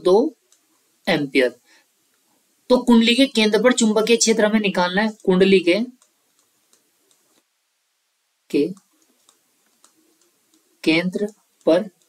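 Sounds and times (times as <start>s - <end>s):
stylus tapping tablet screen: 0.4s - 0.8s, 3.8s - 7.5s, 8.5s - 12.0s.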